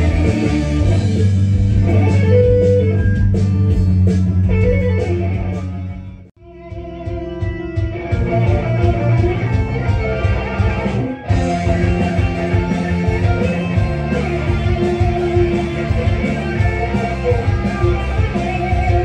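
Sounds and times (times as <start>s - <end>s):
instrumental rock music: 0.0s - 19.0s.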